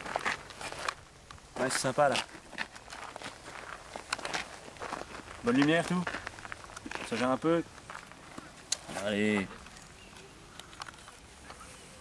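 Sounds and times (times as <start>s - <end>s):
short irregular footsteps: 0.0s - 9.8s.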